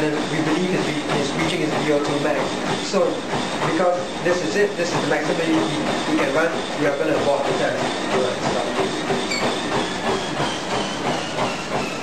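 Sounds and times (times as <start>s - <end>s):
treadmill belt running: 0.0s - 12.0s.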